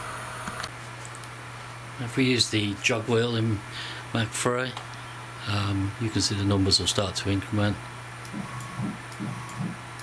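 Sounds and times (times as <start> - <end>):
low electrical hum with hiss: 0.0 - 10.0.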